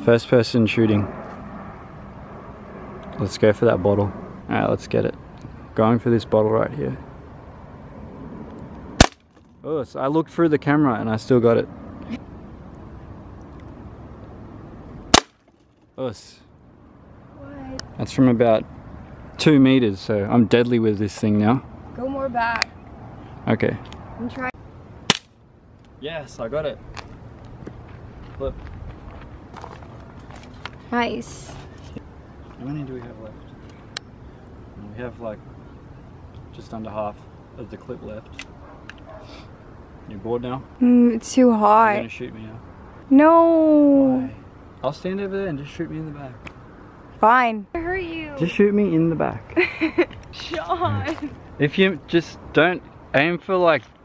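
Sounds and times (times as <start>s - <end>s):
distant traffic noise: 0.0s - 54.0s
wind rumbling on microphone: 26.5s - 32.0s
footsteps on dry ground: 26.9s - 30.8s.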